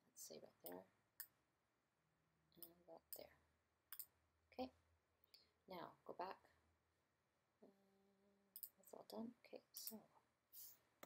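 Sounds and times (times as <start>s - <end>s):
computer mouse clicks: 3.9s - 4.1s, 8.6s - 8.8s.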